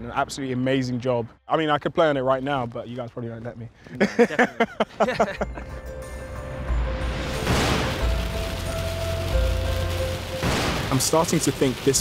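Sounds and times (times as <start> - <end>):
low booming bass hits: 6.7 - 11.4.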